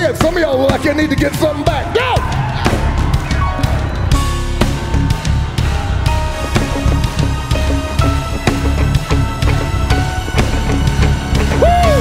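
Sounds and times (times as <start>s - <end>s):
band playing drum-heavy groove: 0.0s - 12.0s
person shouting: 11.6s - 12.0s.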